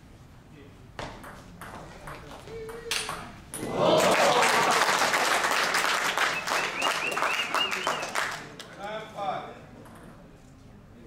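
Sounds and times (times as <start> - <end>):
spectators applauding: 3.8 - 8.8.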